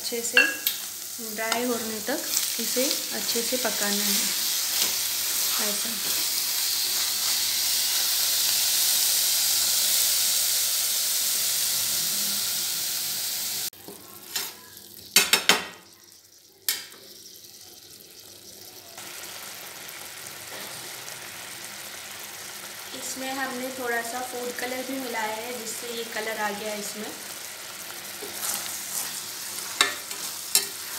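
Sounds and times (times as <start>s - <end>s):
mixture sizzling in a pan: 0.0s - 30.9s.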